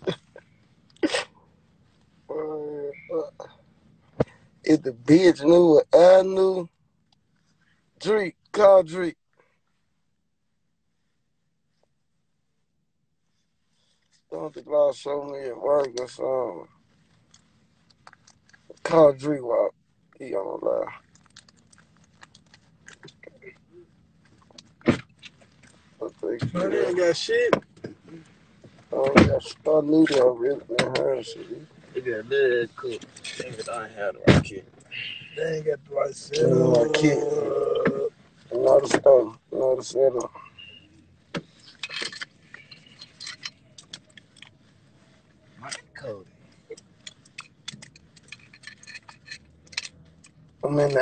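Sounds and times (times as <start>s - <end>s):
light rattles: 41.4s - 51.0s.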